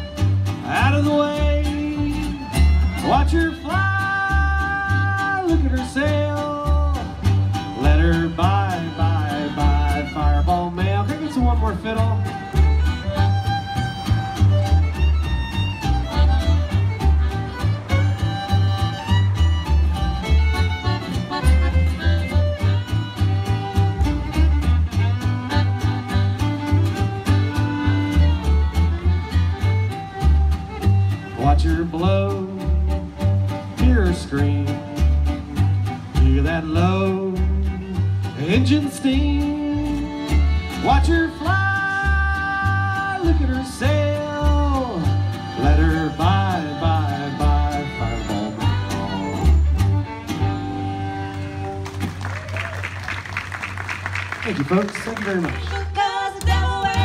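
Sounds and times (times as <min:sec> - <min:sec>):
accordion: 0:00.0 - 0:52.4, 0:53.0 - 0:57.0
acoustic guitar: 0:00.0 - 0:57.0
fiddle: 0:00.0 - 0:57.0
upright bass: 0:00.0 - 0:57.0.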